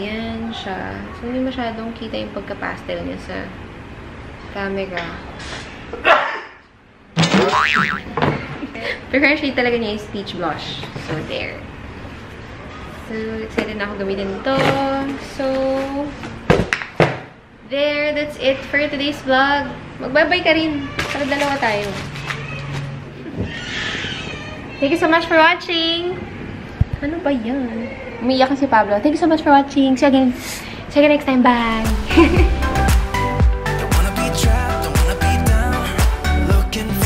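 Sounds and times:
cartoon boing sound effect: 7.2 - 8.2
cat whining meow: 22.2 - 25.1
short sudden sound: 31.6 - 33.6.

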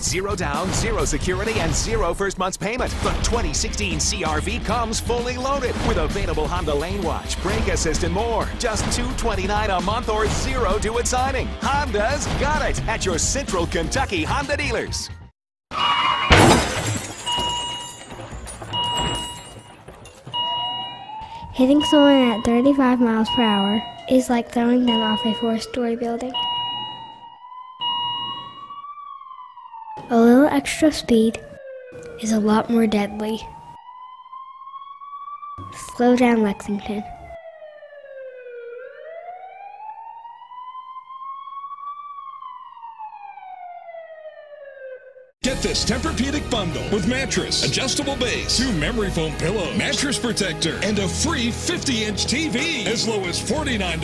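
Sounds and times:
emergency vehicle siren wailing: 15.7 - 16.6, 17.2 - 54.0
crash with shattering glass: 15.8 - 20.3.

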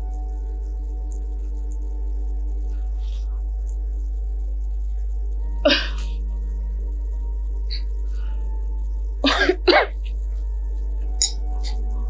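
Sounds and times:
background music: 0.0 - 12.0
low hum: 0.0 - 12.0
woman coughing: 9.3 - 10.0.

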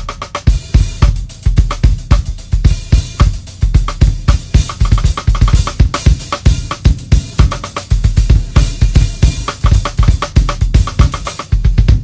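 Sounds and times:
fast drum solo: 0.0 - 12.0.

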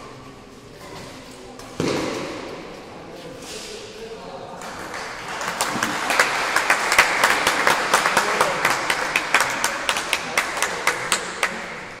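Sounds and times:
small crowd applauding: 4.6 - 12.0.

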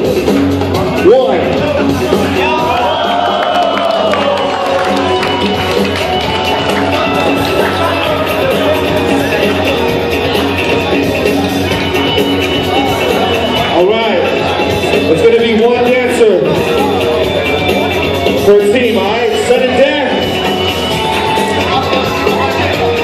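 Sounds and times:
crowd noise: 0.0 - 23.0
loud music through speaker: 0.0 - 23.0.

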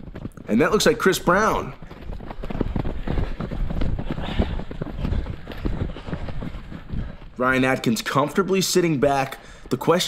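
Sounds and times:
running footsteps on dirt: 0.0 - 10.0.

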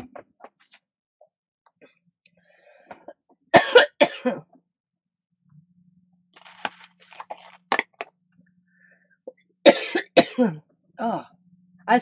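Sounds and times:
paper rustling: 6.3 - 8.0.

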